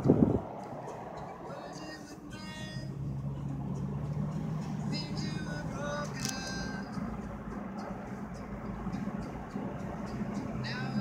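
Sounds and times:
car engine and road noise: 0.0 - 11.0
music playing: 0.0 - 11.0.

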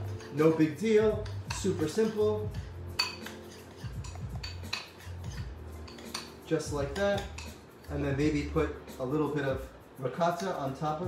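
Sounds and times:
spoon scraping ceramic bowl: 0.0 - 8.1.

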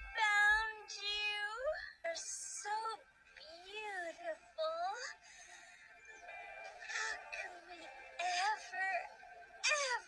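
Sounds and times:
soft background music: 0.0 - 10.0
warped cartoon voices: 5.9 - 10.0.

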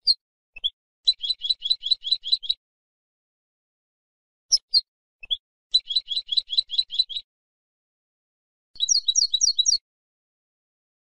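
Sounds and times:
finch chattering chirps: 0.0 - 2.6, 4.5 - 7.2, 8.8 - 9.8.

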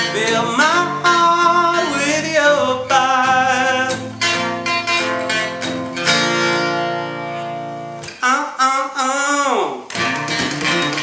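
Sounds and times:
man singing: 0.0 - 4.4, 8.1 - 10.0
strummed acoustic guitar: 0.0 - 11.0.

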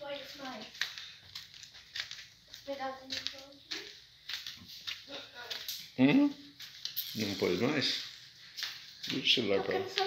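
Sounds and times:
soft footsteps: 0.0 - 10.0.

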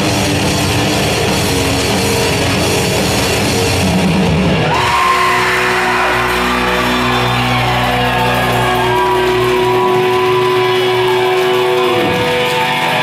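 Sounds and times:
electric guitars ringing: 0.0 - 13.0
crowd shouting: 4.5 - 13.0.

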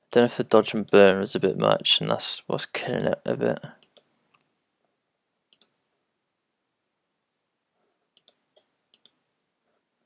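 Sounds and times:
computer mouse clicking: 3.8 - 4.5, 5.5 - 5.8, 8.2 - 9.2.

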